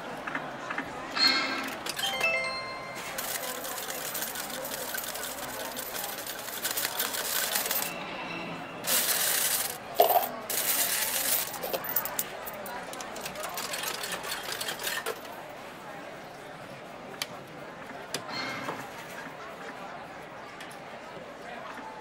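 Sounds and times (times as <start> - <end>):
coins clinking into metal tray: 1.2 - 8.0, 8.8 - 15.3.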